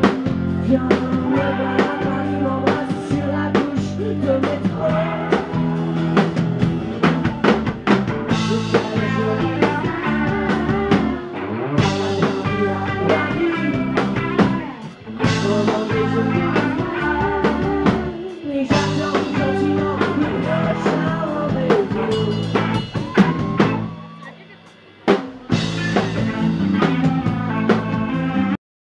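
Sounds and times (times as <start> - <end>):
rock band playing: 0.0 - 28.6.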